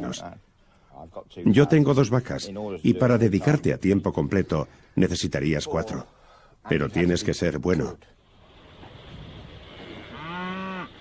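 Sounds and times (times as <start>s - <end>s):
cow mooing: 9.8s - 11.0s.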